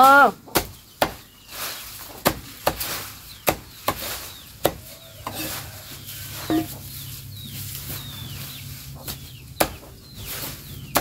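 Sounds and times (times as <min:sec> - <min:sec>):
knife chopping grass: 0:00.0 - 0:05.6, 0:09.0 - 0:11.0.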